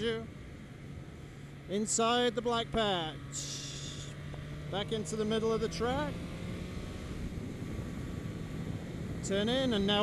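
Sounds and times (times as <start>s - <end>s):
motorcycle engine accelerating: 2.7s - 10.0s
wind noise on microphone: 6.9s - 10.0s.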